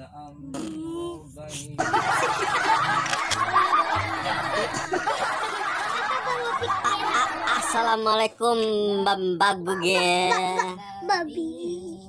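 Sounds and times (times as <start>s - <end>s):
man and boy laughing: 1.8s - 7.7s, 9.8s - 10.8s
background music: 1.8s - 10.8s.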